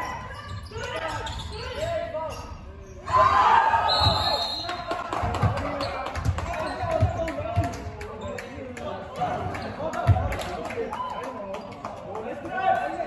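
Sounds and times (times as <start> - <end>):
basketball bouncing on court: 5.3 - 7.8.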